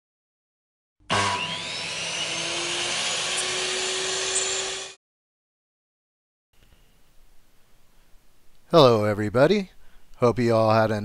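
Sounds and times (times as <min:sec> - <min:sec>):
machine-like whine: 0:01.5 - 0:05.0.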